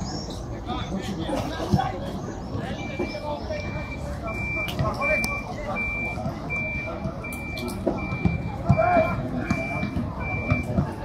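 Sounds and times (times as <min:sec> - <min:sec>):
vehicle reversing alarm beeps: 0:02.6 - 0:11.0.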